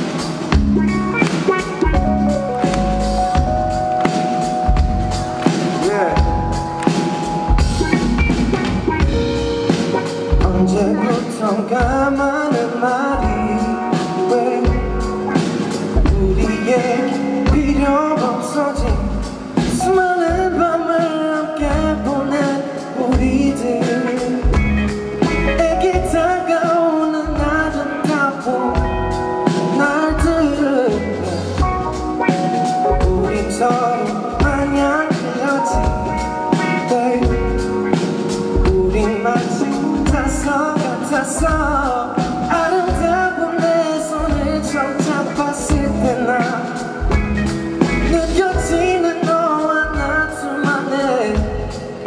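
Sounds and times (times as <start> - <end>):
bass: 0.0 - 21.0, 21.6 - 52.0
drums: 0.0 - 52.0
man singing into microphone: 5.5 - 7.2, 10.1 - 47.2, 47.9 - 52.0.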